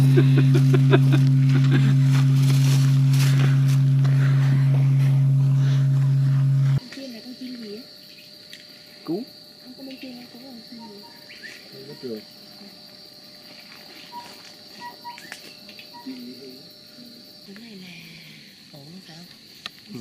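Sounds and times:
large bell low hum: 0.0 - 6.8
high-pitched insect drone: 0.0 - 20.0.

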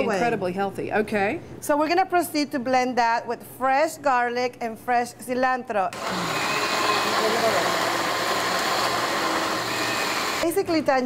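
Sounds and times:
electric blender running: 6.0 - 10.6.

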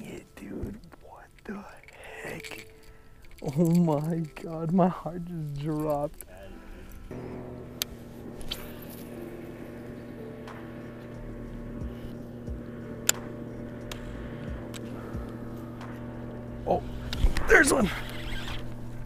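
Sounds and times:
steady low hum: 0.0 - 19.0
fishing reel clicks: 0.7 - 7.2, 7.8 - 19.0.

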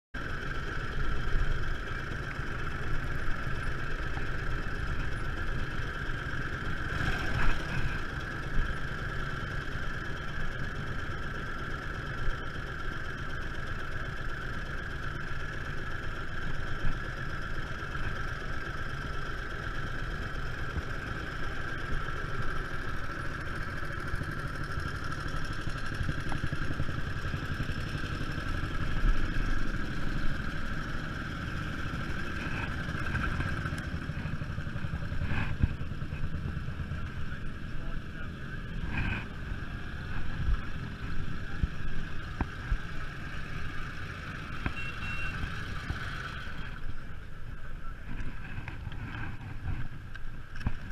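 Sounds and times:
motorcycle engine idling: 0.2 - 50.9
other motorcycles running: 0.2 - 50.9.

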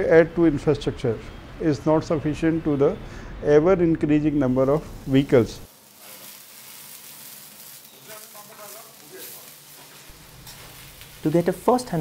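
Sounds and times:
food sizzling in hot oil: 4.8 - 12.0.

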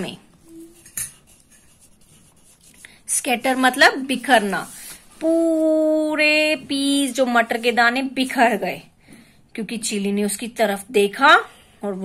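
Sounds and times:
pencil writing on paper: 0.5 - 4.6.

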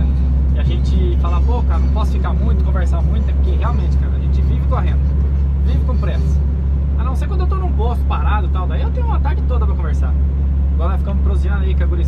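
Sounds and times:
diesel truck engine drone: 0.0 - 12.0
road noise: 0.0 - 12.0.

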